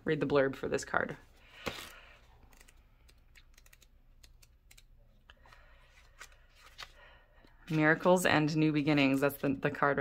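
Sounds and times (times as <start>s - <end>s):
paper pages being leafed through: 5.4s - 7.1s.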